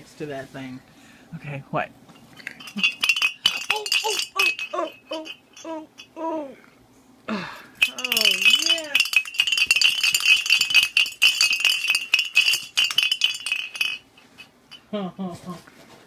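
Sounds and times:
small metal bell shaken: 2.2s - 6.2s, 7.8s - 14.9s.

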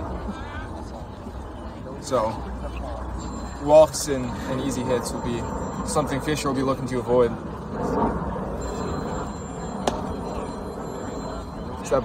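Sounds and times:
outdoor ballfield background noise: 0.0s - 12.0s
faint high-pitched tones: 0.3s - 12.0s.

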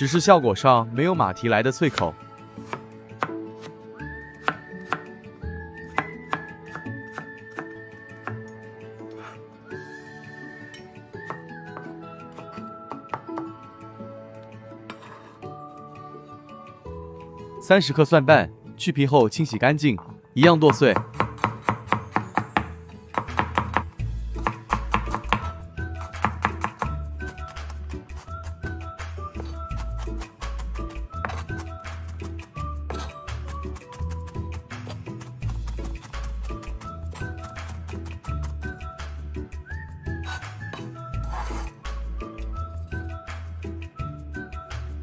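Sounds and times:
background music: 0.0s - 45.0s
cleaver chopping on cutting board: 2.6s - 3.8s, 20.7s - 28.0s, 29.4s - 32.3s, 32.9s - 38.7s.

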